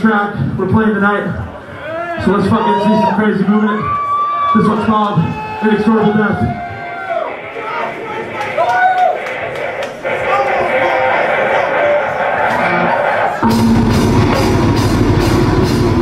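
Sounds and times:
shouting: 1.8 - 13.4
heavy metal band playing: 10.1 - 16.0.

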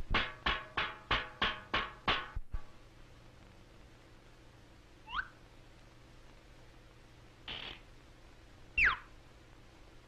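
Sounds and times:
film soundtrack hiss and hum: 0.0 - 10.0
short upward squeak: 5.1 - 5.4, 8.8 - 9.1.

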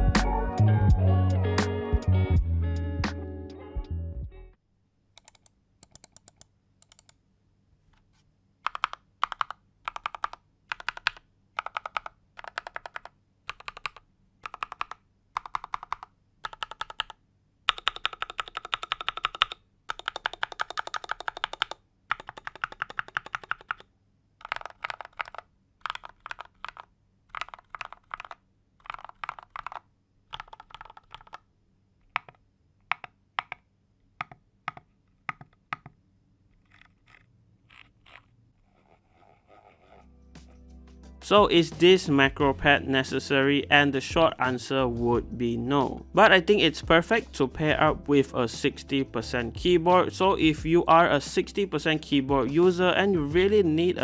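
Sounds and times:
mechanical keyboard typing: 5.2 - 7.2, 8.6 - 31.4, 32.1 - 33.6.

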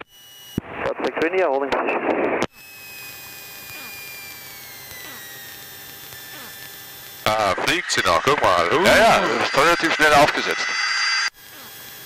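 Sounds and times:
high whine falling in pitch: 7.2 - 11.4
cockpit intercom hum: 7.3 - 11.8.

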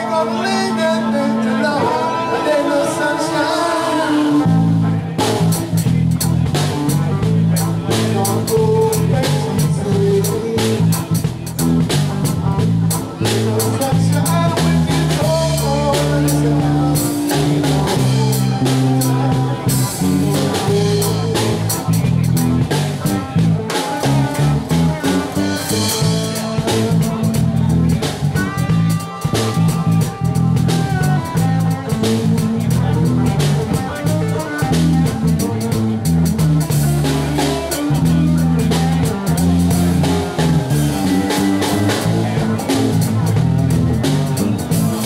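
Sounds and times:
live band playing: 0.0 - 45.0.

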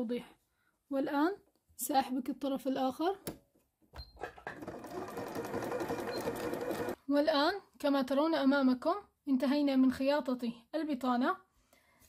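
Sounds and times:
sewing machine stitching: 4.2 - 7.0.

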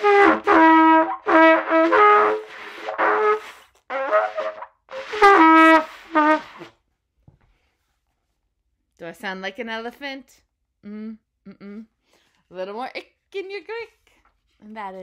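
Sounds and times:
trumpet short blasts: 0.0 - 6.7.

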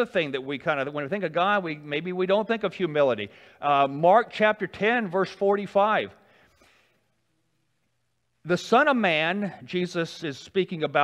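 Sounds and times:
man speaking: 0.0 - 6.3, 8.4 - 11.0.

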